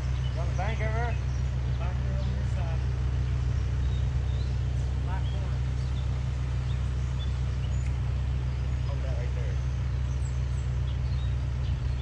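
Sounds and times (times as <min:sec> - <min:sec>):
excavator diesel engine running: 0:00.0 - 0:12.0.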